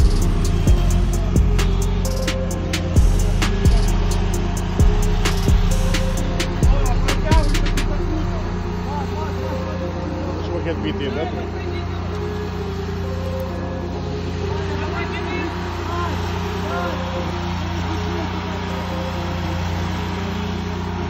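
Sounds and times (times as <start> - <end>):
indistinct voices: 0.0 - 20.3
fire engine motor running: 0.0 - 21.0.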